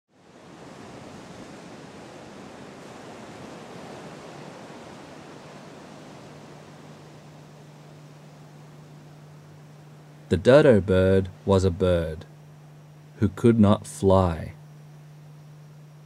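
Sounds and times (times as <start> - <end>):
ocean surf: 0.1 - 12.2
low steady hum: 0.1 - 16.0.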